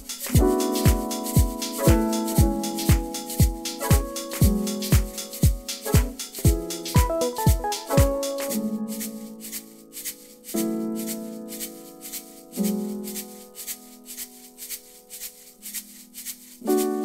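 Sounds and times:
hand shaker shaking: 0.0s - 17.0s
piano sample chords: 0.0s - 17.0s.

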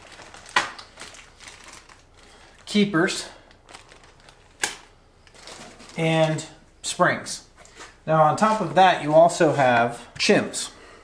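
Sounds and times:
plastic bags rustling: 0.0s - 6.6s.

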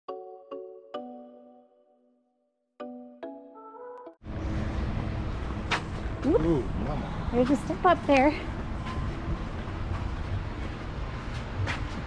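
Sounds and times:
heavy low rumble: 4.2s - 11.6s.

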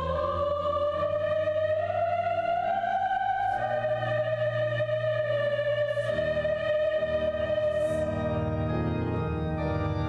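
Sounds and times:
mixed choir singing a chord: 0.0s - 10.0s.

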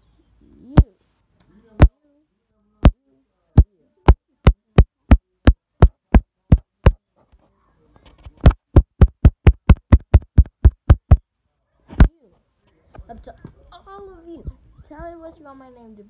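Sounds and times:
finger tapping on microphone: 5.8s - 7.0s, 8.4s - 11.2s.

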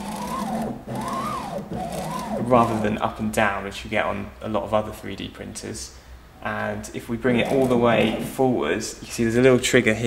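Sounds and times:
stepper motor whine: 0.0s - 3.0s.

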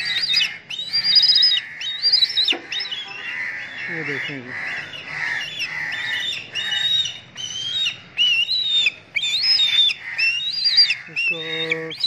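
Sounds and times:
crows cawing: 0.0s - 8.2s, 8.8s - 12.0s
kite whistled calls: 7.5s - 12.0s.

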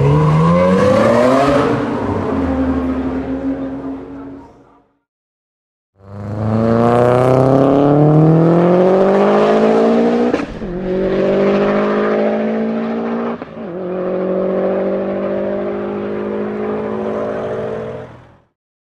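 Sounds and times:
car engine accelerating hard: 0.0s - 4.4s, 6.0s - 18.5s.

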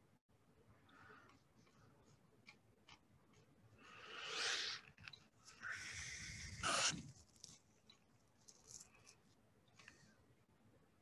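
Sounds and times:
soft rustling: 7.0s - 10.2s.

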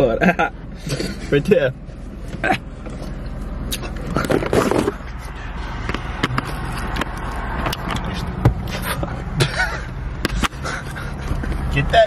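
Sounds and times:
engine hum inside car cabin: 0.0s - 12.0s.

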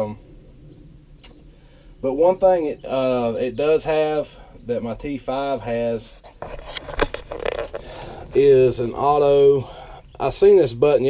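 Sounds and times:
camera handling clicks and rustling: 6.4s - 7.9s.

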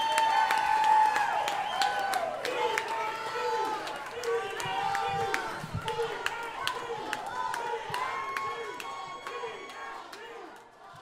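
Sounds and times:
audience chatter: 2.0s - 11.0s.

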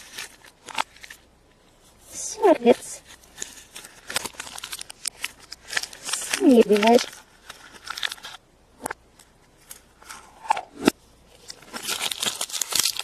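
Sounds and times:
plastic wrapping crinkling: 0.0s - 1.3s, 2.2s - 10.6s, 11.3s - 13.0s.

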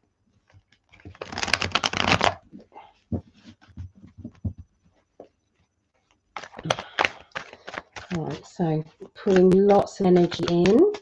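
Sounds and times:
cards being shuffled: 0.5s - 4.6s, 6.1s - 11.0s.

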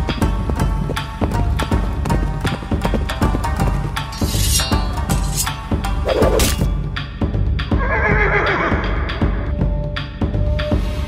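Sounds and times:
dramatic music: 0.0s - 11.0s
horse whinnying: 7.8s - 9.3s.

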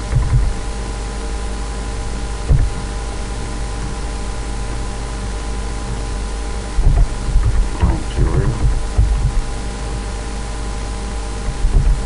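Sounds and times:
irregular low thumps: 0.0s - 0.7s, 2.4s - 10.2s, 11.3s - 12.0s
electrical hum and hiss: 0.0s - 12.0s.

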